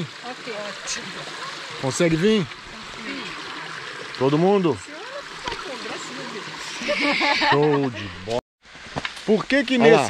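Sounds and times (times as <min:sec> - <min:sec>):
stream running over rocks: 0:00.0 - 0:10.0.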